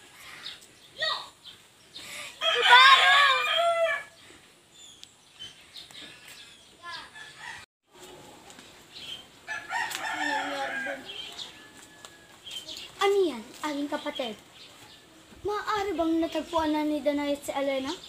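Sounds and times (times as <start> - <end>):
rooster crowing: 2.4 - 4.2, 7.1 - 7.6, 9.5 - 12.4.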